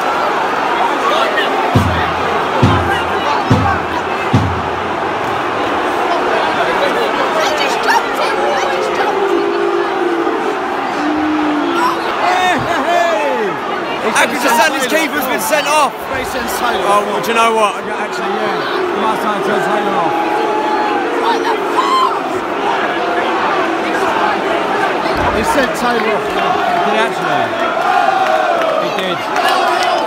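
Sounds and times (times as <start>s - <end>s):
stadium crowd shouting: 0.0s - 30.0s
low thumps: 25.1s - 27.3s.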